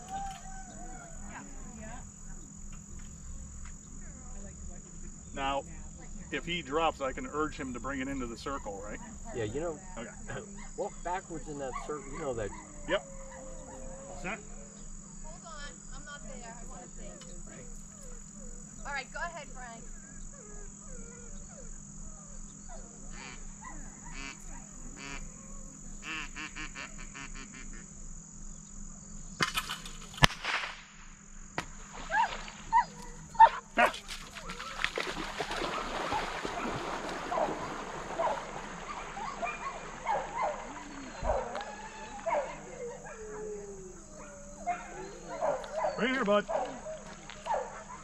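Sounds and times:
dog splashing in water: 33.8s - 42.4s.

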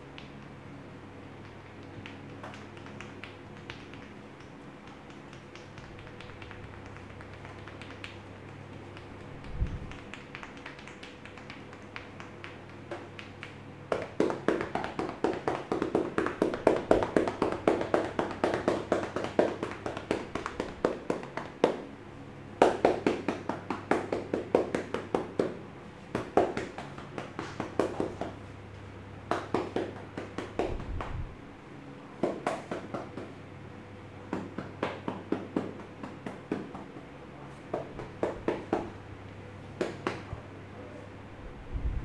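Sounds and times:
hands clapping on a back: 1.4s - 21.9s, 22.6s - 28.5s, 29.2s - 31.3s, 32.2s - 33.4s, 34.3s - 39.0s, 39.7s - 40.4s.

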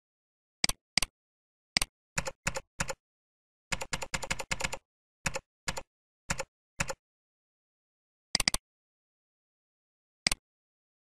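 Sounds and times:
computer keyboard typing: 1.8s - 3.0s, 3.7s - 7.0s, 8.4s - 8.6s.

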